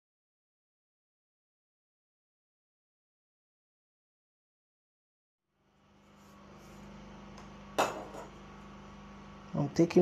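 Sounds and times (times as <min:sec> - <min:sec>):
low room hum: 0:05.5 - 0:10.0.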